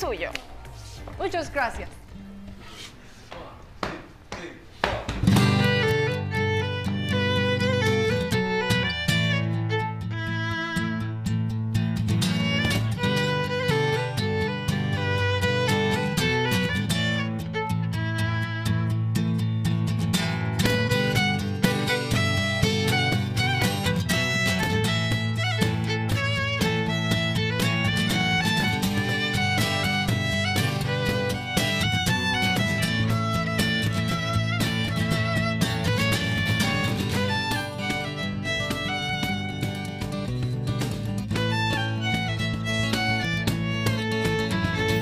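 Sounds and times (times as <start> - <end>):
cajon drumming: 4.8 - 9.0, 12.0 - 17.2, 20.2 - 45.0
acoustic guitar: 5.0 - 45.0
violin: 5.3 - 45.0
sharp taps: 12.4 - 13.9, 20.6 - 45.0.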